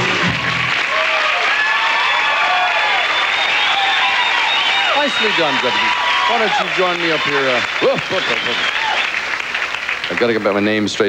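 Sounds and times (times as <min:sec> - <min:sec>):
rock band playing: 0:00.0 - 0:00.8
audience applauding and cheering: 0:00.0 - 0:11.0
high whoops and shouts: 0:00.8 - 0:09.2.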